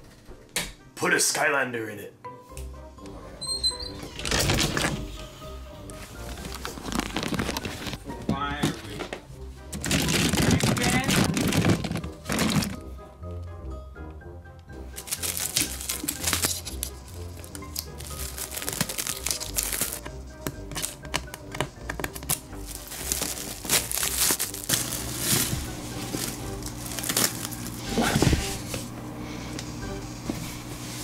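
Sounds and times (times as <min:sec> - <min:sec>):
background music: 0:00.0 - 0:31.0
cling wrap crinkling: 0:06.1 - 0:08.1, 0:09.7 - 0:12.8, 0:15.0 - 0:28.8.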